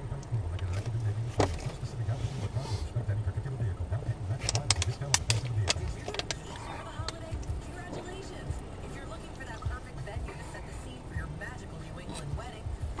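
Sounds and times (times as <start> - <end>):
low steady rumble: 0.0 - 13.0
music: 0.0 - 13.0
sharp clicks: 4.4 - 7.6.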